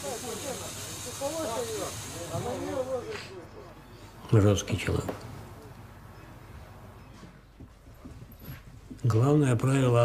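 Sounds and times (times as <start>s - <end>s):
high-pitched hiss: 0.0s - 3.4s.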